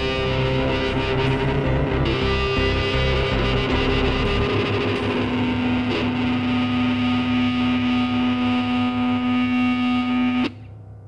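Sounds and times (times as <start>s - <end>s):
live rock band instrumental: 0.0s - 10.5s.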